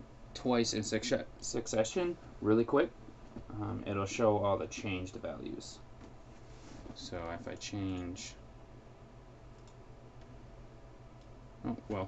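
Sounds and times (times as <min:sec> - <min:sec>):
low steady hum: 0:00.0 - 0:12.0
computer mouse clicks: 0:09.5 - 0:10.3.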